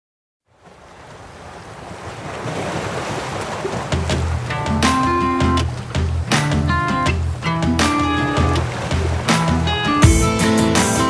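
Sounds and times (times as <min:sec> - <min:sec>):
ocean surf washing on beach: 0:00.5 - 0:10.0.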